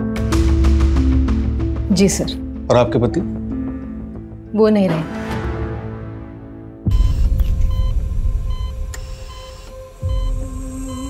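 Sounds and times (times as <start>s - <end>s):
patient monitor beeping: 6.9s - 11.0s.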